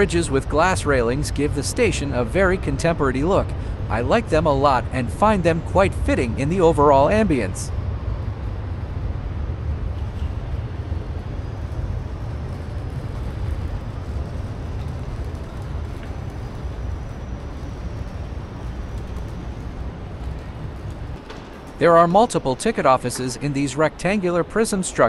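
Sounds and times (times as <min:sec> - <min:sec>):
low rumble and hiss of concourse: 0:00.0 - 0:25.0.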